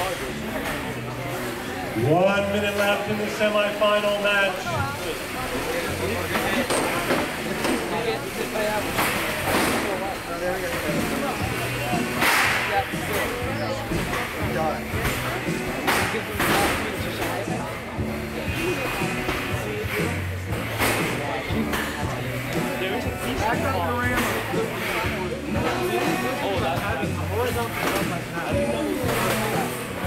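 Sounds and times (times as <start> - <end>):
background music with steady beat: 0.0 - 30.0
crowd chatter: 0.0 - 30.0.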